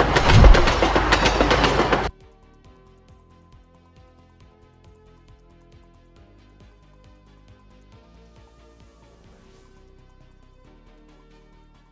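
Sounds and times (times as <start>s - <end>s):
heavy low thump: 0.0s - 1.1s
train rushing with rail clacks: 0.0s - 2.1s.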